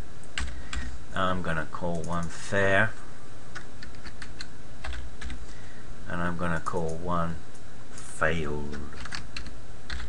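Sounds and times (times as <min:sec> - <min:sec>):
keyboard typing: 0:03.5 - 0:05.4, 0:08.7 - 0:10.0.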